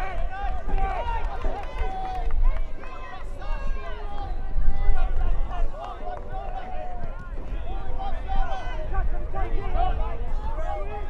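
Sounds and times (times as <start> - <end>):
people calling and talking: 0.0 - 11.0.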